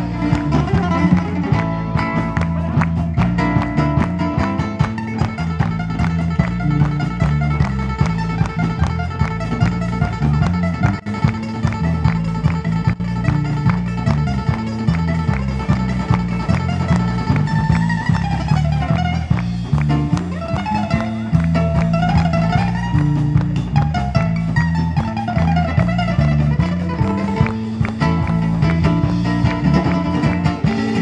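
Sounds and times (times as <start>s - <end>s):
ukulele bass and drums band: 0.0s - 31.0s.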